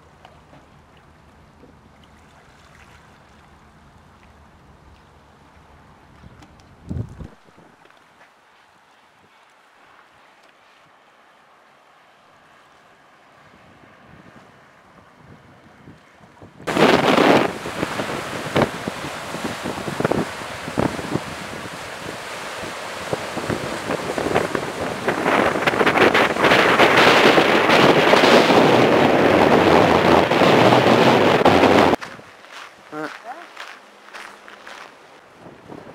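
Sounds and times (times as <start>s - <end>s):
gusty wind on microphone: 6.2s - 7.8s, 13.5s - 32.3s, 35.3s - 35.9s
surf breaking on rocks: 16.7s - 32.1s.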